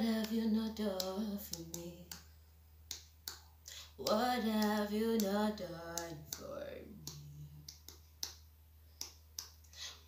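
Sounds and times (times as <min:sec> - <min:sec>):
low electrical hum: 0:00.0 - 0:10.0
faint finger snaps: 0:01.0 - 0:02.3, 0:02.9 - 0:08.4, 0:09.0 - 0:10.0.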